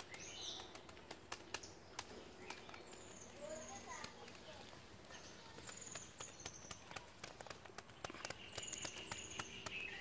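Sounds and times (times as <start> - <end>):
bird chirps: 0.0 - 0.8, 1.5 - 10.0.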